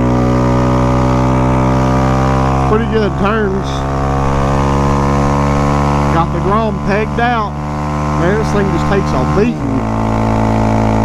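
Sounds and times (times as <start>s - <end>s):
motorcycle engine at high revs: 0.0s - 11.0s.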